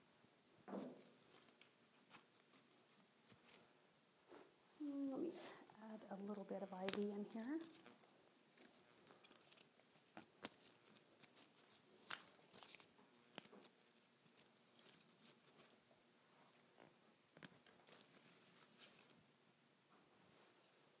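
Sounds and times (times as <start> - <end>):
ivy leaves rustling and crackling: 6.2 - 8.0, 8.6 - 15.7.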